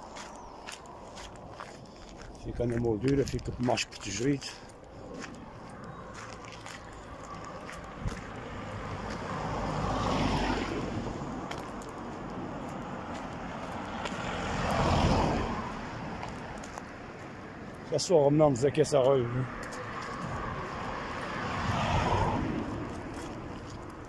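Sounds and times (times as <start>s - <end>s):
cars driving past: 3.5s - 24.0s.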